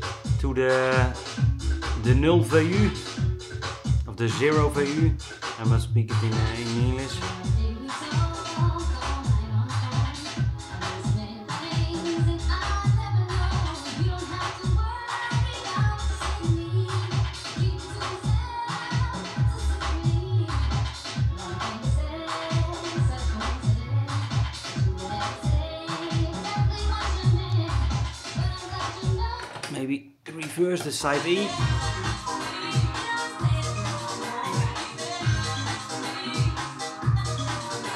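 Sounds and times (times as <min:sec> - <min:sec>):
dj mix with heavy beat: 0:00.0 - 0:37.9.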